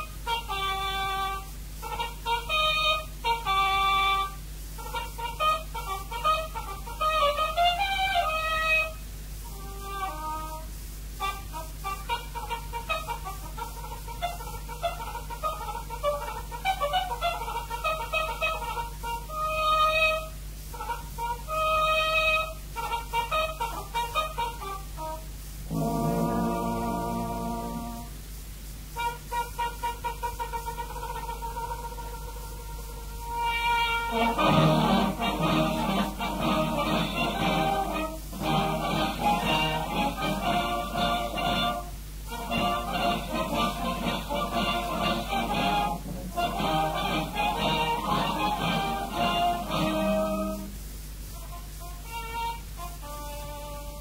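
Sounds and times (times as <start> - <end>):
trumpet solo: 0.0 - 28.3, 33.1 - 54.0
steady low hum: 23.6 - 29.1, 34.0 - 52.0
low sustained chord: 25.7 - 28.2.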